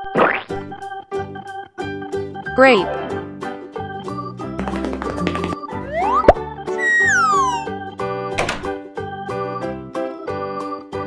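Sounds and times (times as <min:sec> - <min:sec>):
children's background music: 0:00.6 - 0:11.0
rising cartoon whistle: 0:05.8 - 0:07.8
falling whistle glide: 0:05.9 - 0:07.8.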